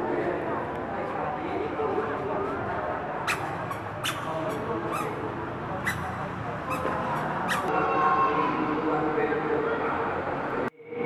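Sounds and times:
indistinct voices: 0.0s - 11.0s.

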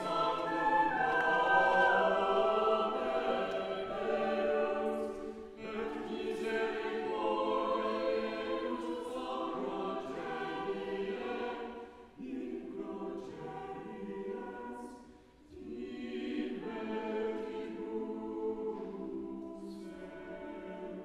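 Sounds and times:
church choir singing: 0.0s - 21.0s.

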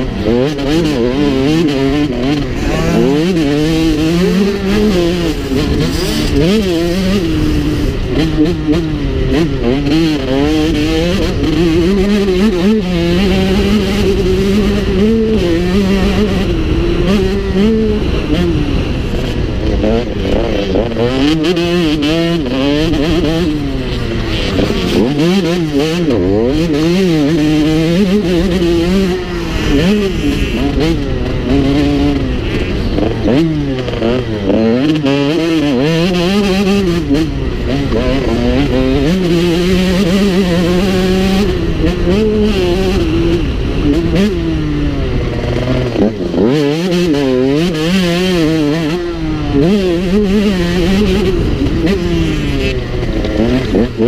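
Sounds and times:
motocross bike engine revving: 0.0s - 54.0s.

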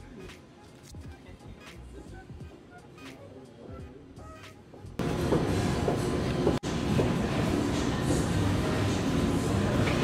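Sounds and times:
busy indoor background din: 0.0s - 10.0s.

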